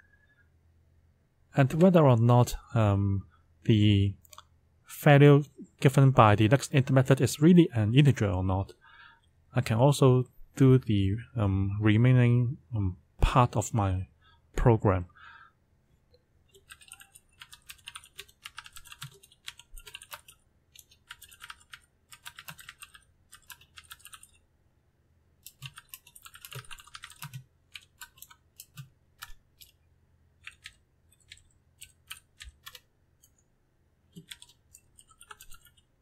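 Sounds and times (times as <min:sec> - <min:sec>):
typing on computer keyboard: 0:16.5 - 0:24.4, 0:25.4 - 0:29.8, 0:30.4 - 0:32.9, 0:34.1 - 0:35.9.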